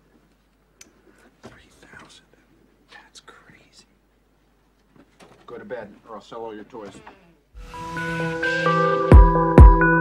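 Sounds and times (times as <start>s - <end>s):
man whispering: 1.2s - 4.0s.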